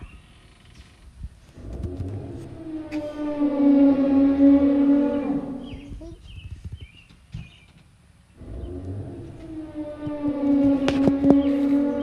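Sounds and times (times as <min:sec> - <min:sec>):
dinosaur roar sound effect: 0:01.6 - 0:06.0, 0:08.4 - 0:12.0.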